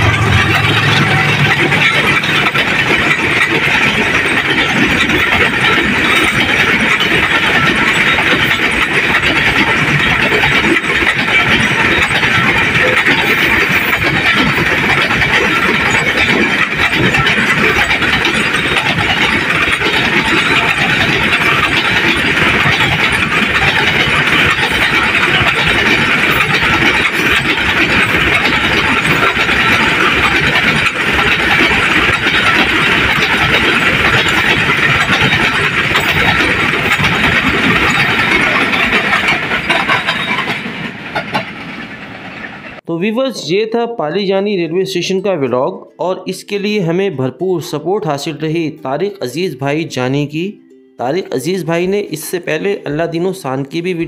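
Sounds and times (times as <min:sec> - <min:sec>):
train wheels clattering on rails: 0:00.0 - 0:42.8.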